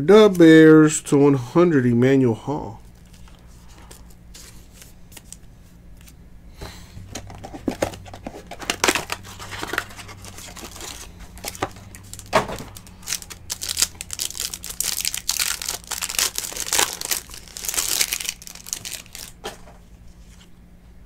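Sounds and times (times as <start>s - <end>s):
cardboard box being opened: 7.2s - 14.2s
plastic wrapper tearing and crinkling: 8.5s - 19.4s.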